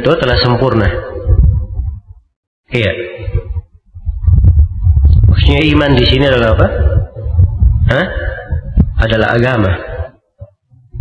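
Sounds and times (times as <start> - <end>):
low rumbling hum: 0.0 - 11.0.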